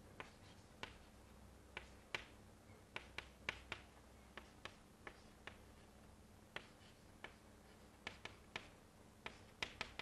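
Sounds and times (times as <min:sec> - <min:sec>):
faint low hum: 0:00.0 - 0:10.0
chalk tapping on chalkboard: 0:00.2 - 0:01.1, 0:01.7 - 0:05.8, 0:06.5 - 0:10.0.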